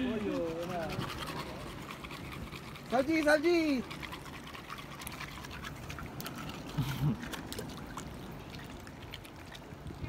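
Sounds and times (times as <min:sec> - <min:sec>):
sea water lapping: 0:00.0 - 0:10.0
small splashes: 0:00.0 - 0:10.0.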